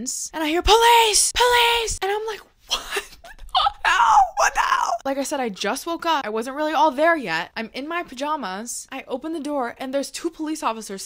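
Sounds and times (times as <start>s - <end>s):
young woman laughing: 2.7s - 4.0s.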